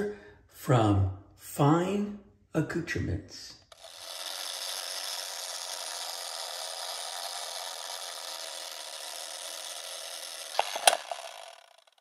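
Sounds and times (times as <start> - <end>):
film projector hissing rattle: 3.7 - 12.0
sharp clicks: 9.5 - 12.0.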